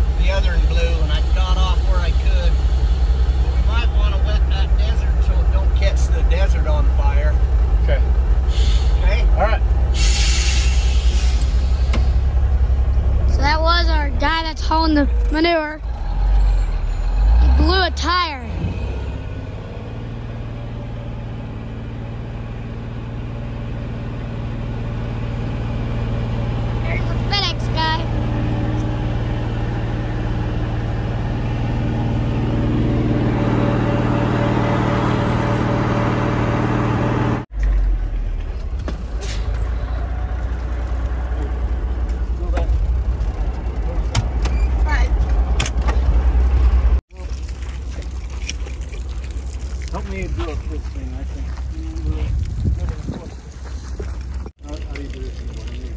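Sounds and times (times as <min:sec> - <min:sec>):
truck engine running: 0:00.0 - 0:55.9
low rumble with knocks and rattles: 0:10.8 - 0:16.7, 0:37.6 - 0:47.0, 0:50.2 - 0:55.2.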